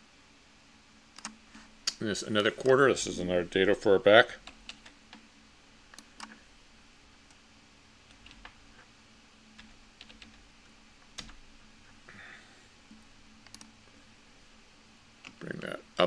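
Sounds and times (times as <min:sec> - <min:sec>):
low room hum: 0:00.0 - 0:16.0
computer keyboard and mouse clicks: 0:01.2 - 0:02.0, 0:09.6 - 0:10.4, 0:13.4 - 0:13.7.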